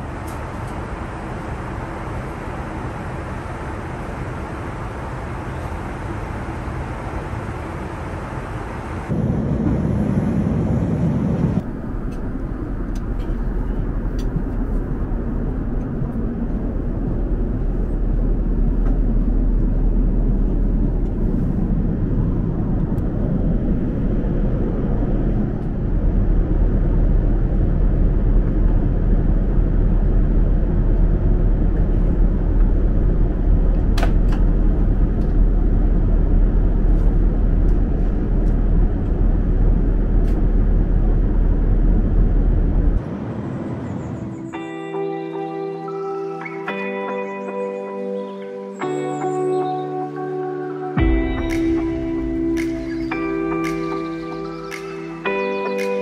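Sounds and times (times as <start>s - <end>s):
airplane cabin rumble: 0.0s - 44.7s.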